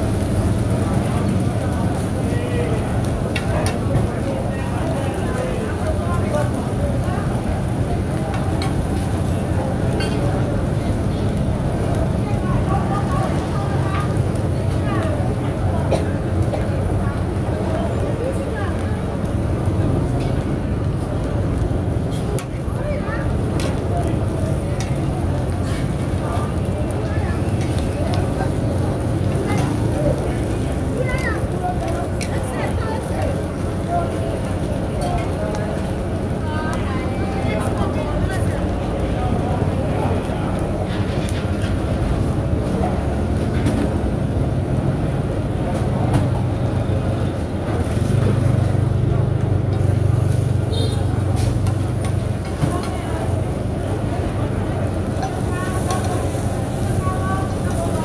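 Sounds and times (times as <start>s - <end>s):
food sizzling in iron pan: 0.0s - 42.7s, 49.8s - 58.0s
low rumble under wok: 0.0s - 58.0s
people talking: 0.0s - 58.0s.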